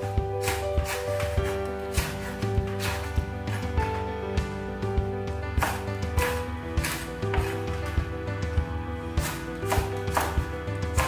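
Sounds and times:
background music: 0:00.0 - 0:11.0
cleaver chopping on wooden board: 0:00.4 - 0:03.8, 0:05.6 - 0:07.8, 0:09.2 - 0:11.0.

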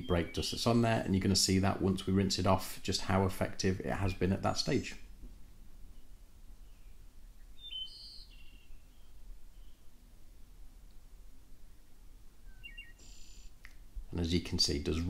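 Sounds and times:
faint bird chirps: 0:05.9 - 0:10.0, 0:11.7 - 0:13.6.

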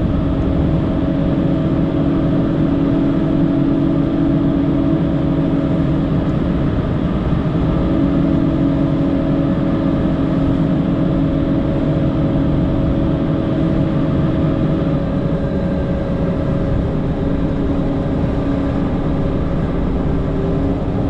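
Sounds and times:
constant hum: 0:00.0 - 0:21.0
diesel engine running under load: 0:00.0 - 0:21.0.

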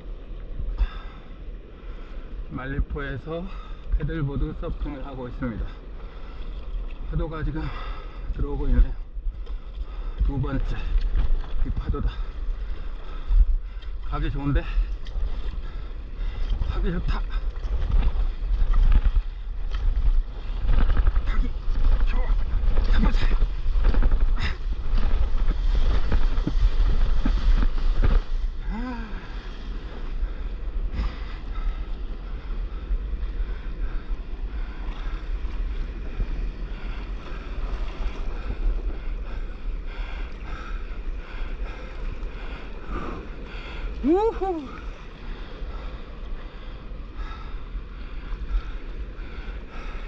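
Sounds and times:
wind buffeting microphone: 0:00.0 - 0:50.0
water rushing and splashing: 0:04.0 - 0:39.3, 0:40.2 - 0:46.5.

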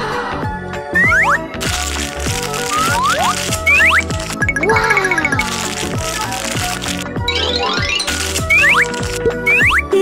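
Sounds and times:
upbeat children's music: 0:00.0 - 0:10.0.

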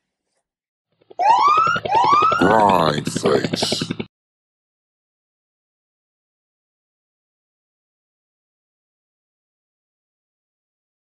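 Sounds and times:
rising siren sound effect: 0:01.2 - 0:02.5
fast electronic pulse: 0:01.2 - 0:04.1.

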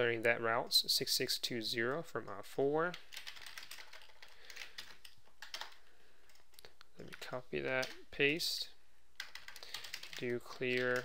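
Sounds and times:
computer keyboard typing: 0:02.9 - 0:08.0, 0:09.2 - 0:11.0.

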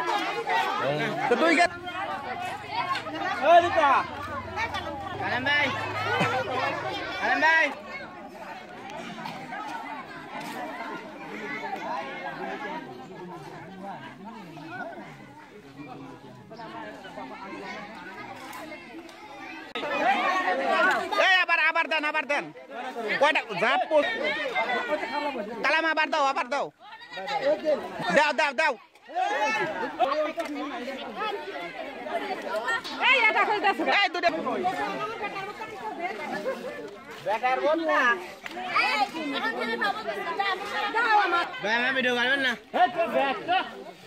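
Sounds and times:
children and adults talking: 0:00.0 - 0:44.0
people chattering: 0:00.0 - 0:44.0.

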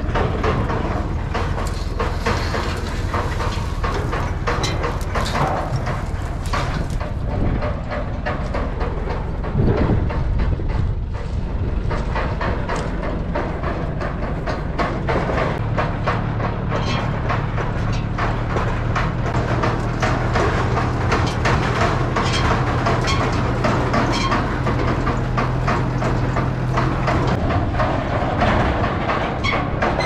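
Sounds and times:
steel frame rattling and knocking: 0:00.0 - 0:30.0
tractor engine running: 0:00.0 - 0:30.0.

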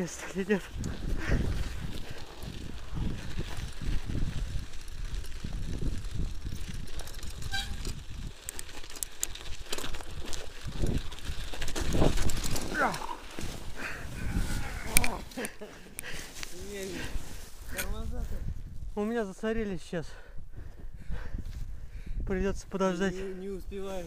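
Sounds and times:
person speaking: 0:00.0 - 0:00.8
bike clicks: 0:00.0 - 0:14.1, 0:14.8 - 0:16.6
wind rumbling on microphone: 0:00.0 - 0:19.8, 0:20.4 - 0:24.0
bike tyres on packed snow: 0:00.0 - 0:24.0.

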